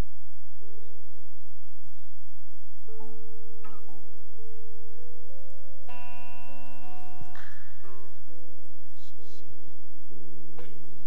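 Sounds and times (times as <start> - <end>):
steady low hum: 0.0 - 11.0
church keyboard sustained note: 5.8 - 9.5.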